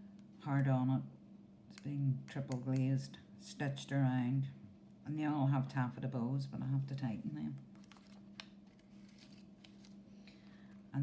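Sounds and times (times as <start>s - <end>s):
steady low hum: 0.0s - 11.0s
card tags rustling and ticking: 7.7s - 10.7s.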